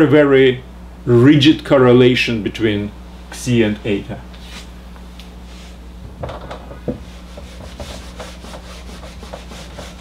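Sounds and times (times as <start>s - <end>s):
steady low hum: 0.0s - 10.0s
eraser scrubbing whiteboard: 7.0s - 10.0s.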